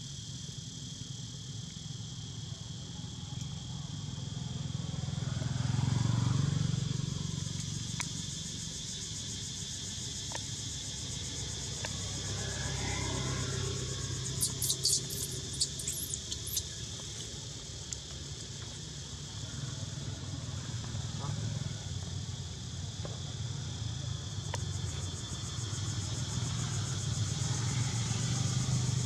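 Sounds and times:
passing traffic rumble: 4.6 - 22.7, 25.4 - 29.0
high insect buzzing: 12.2 - 16.9
short sharp high chirps: 14.4 - 16.6.

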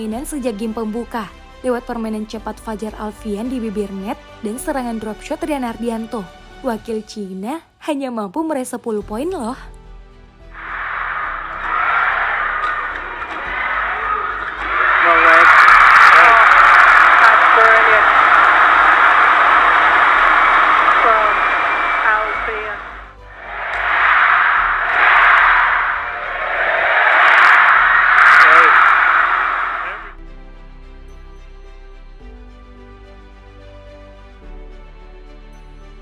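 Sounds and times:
quiet background music: 0.0 - 10.6
arena crowd cheering and shouting: 10.6 - 30.1.

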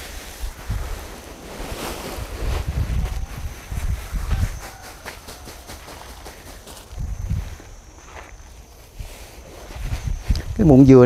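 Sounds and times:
plastic sack rustling: 0.0 - 7.8
wind buffeting microphone: 0.0 - 11.0.

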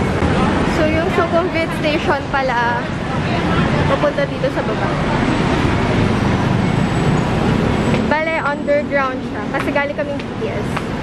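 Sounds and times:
busy road traffic: 0.0 - 11.0.

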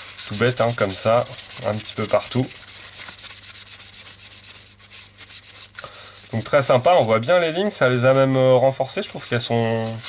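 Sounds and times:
paper towel rubbing plastic: 0.0 - 10.0.

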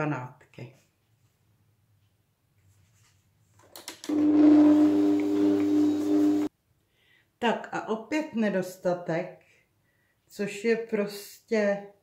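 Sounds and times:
mixer motor humming: 4.0 - 6.5.

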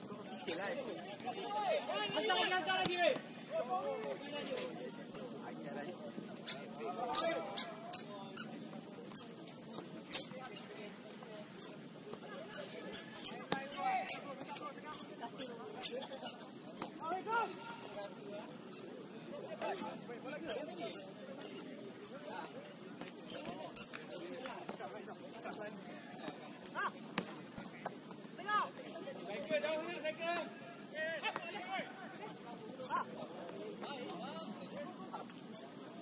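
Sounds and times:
ball being kicked: 27.1 - 28.0.

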